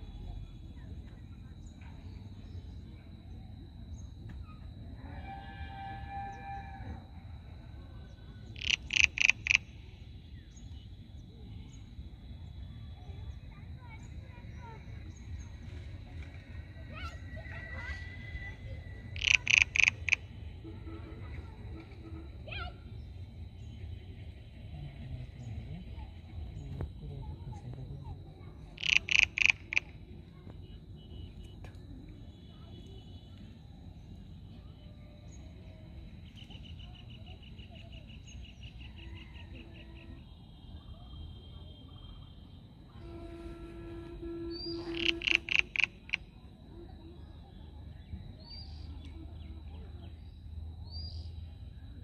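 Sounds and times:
steady low hum: 0.0s - 28.8s
bird calling: 8.6s - 9.8s, 17.0s - 20.3s, 28.7s - 29.9s, 43.0s - 46.3s
animal calling short pitched notes: 19.2s - 20.2s, 28.8s - 29.9s, 44.5s - 46.2s.

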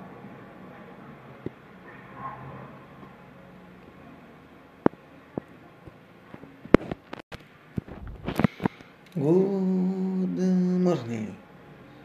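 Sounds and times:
low background room noise: 0.0s - 12.0s.

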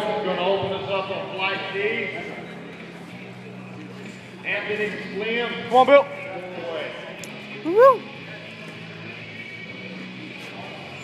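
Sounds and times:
murmur of large hall: 0.0s - 11.0s.

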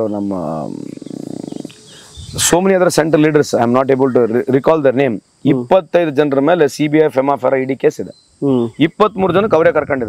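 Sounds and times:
man speaking: 0.0s - 0.8s, 2.2s - 10.0s.

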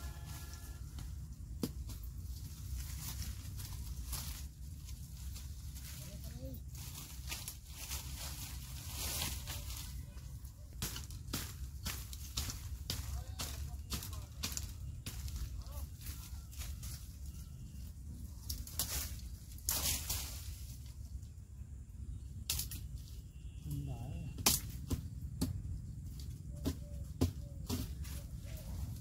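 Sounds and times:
vegetation rustling and crackling: 0.0s - 29.0s.

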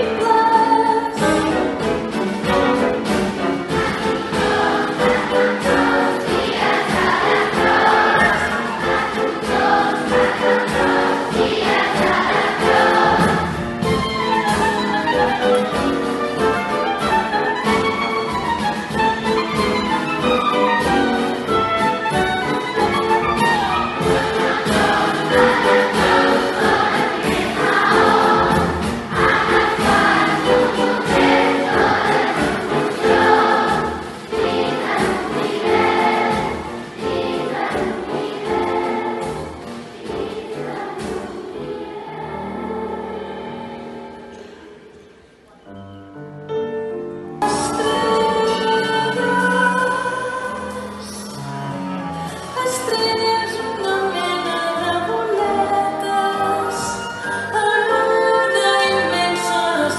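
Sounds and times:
children's choir singing: 0.0s - 45.7s, 47.4s - 51.4s, 52.4s - 59.9s
instrumental ensemble with piano: 0.0s - 59.9s.

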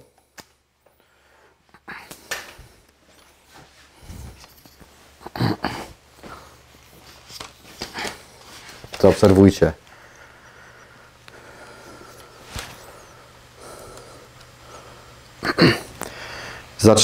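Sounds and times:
faint low hum: 0.0s - 17.0s
footsteps: 2.2s - 5.2s, 5.9s - 13.1s.

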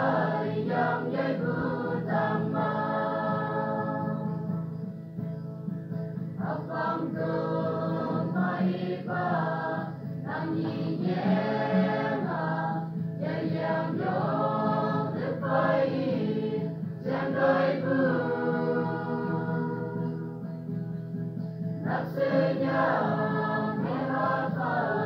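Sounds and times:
church choir singing: 0.0s - 4.7s, 6.3s - 20.4s, 21.8s - 25.0s.

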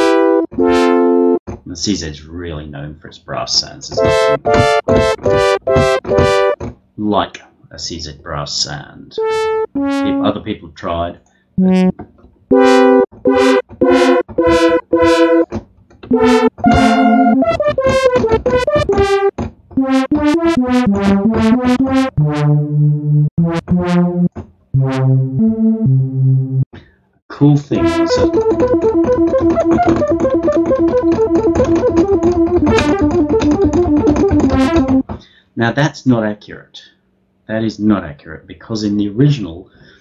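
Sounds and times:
synth brass chords: 0.0s - 1.4s, 4.0s - 6.6s, 9.2s - 10.5s, 12.5s - 15.4s, 16.1s - 26.6s, 27.7s - 31.4s.

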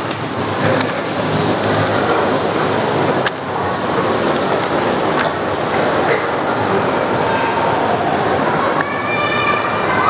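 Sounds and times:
loud steady rushing noise: 0.0s - 10.0s
book pages turning: 4.2s - 5.3s.

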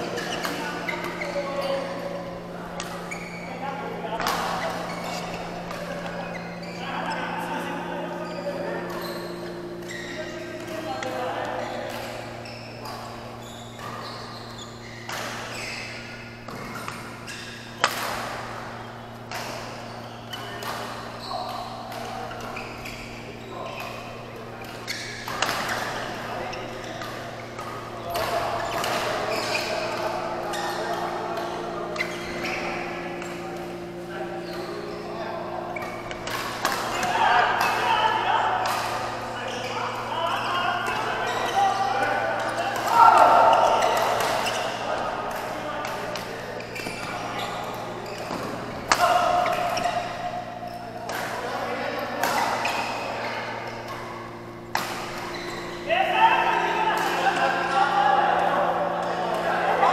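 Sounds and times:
players' voices and calls: 0.0s - 59.9s
badminton rackets striking shuttlecock: 4.2s - 6.2s, 17.8s - 18.6s, 24.6s - 29.9s, 35.7s - 37.8s, 38.6s - 39.2s, 54.7s - 55.5s.

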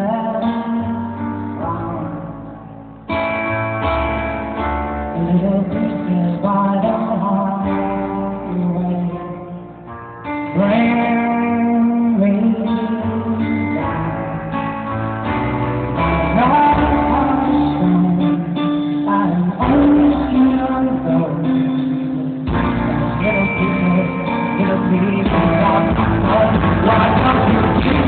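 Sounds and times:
live band playing pop-rock: 0.0s - 28.0s.

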